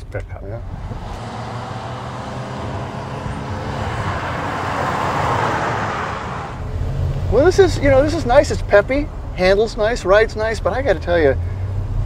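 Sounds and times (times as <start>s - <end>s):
pickup truck engine rumble: 0.0s - 12.0s
tyre and road noise: 0.0s - 12.0s.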